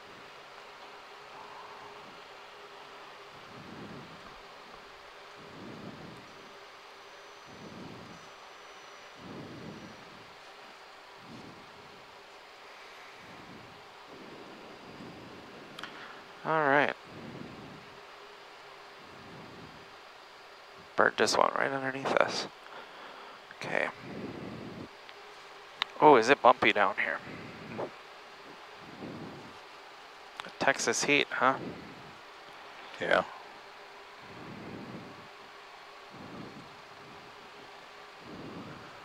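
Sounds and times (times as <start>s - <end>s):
cockpit hiss: 0.0s - 39.0s
faint steady hum: 0.0s - 39.0s.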